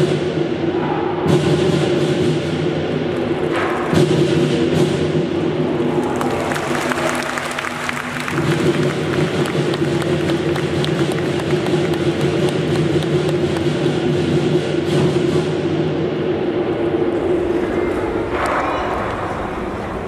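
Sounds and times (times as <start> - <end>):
drum gong and cymbals band: 0.0 - 6.0, 6.6 - 20.0
audience clapping and cheering: 3.0 - 4.4, 5.4 - 14.1, 17.1 - 20.0.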